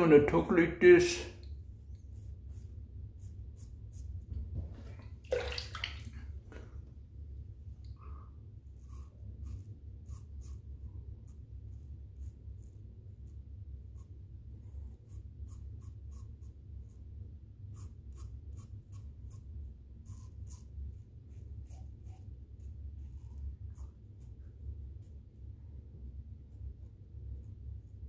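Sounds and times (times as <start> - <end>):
steady low hum: 0.0 - 28.0
razor scraping stubble: 1.4 - 4.3, 8.8 - 14.2, 14.9 - 25.2.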